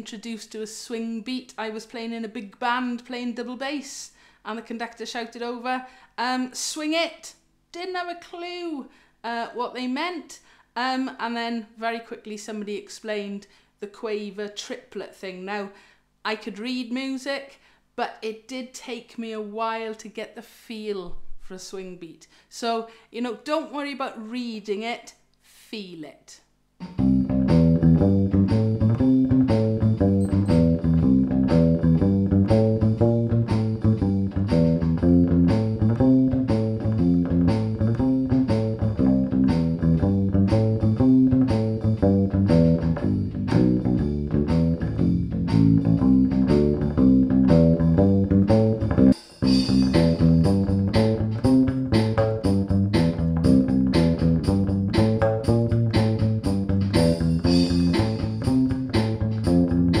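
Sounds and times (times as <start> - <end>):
bass ukulele bass line: 26.8 - 60.0
drum machine beat: 26.8 - 60.0.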